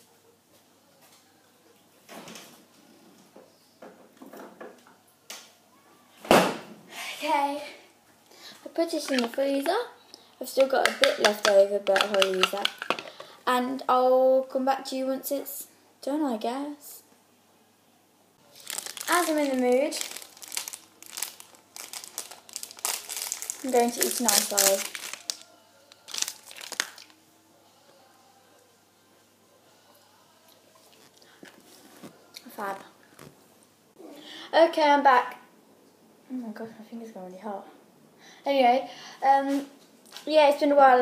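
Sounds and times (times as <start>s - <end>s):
wrapper crinkling: 8.8s - 9.7s, 10.6s - 13.3s, 18.4s - 27.2s.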